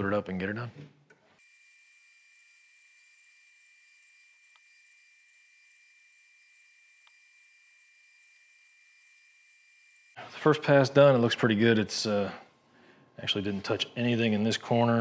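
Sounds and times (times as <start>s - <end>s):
router high-pitched whine: 1.4s - 10.2s.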